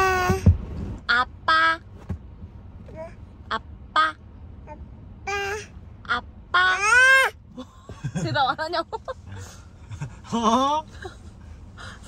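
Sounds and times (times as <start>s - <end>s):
baby shouting: 5.3s - 5.7s, 6.6s - 7.4s.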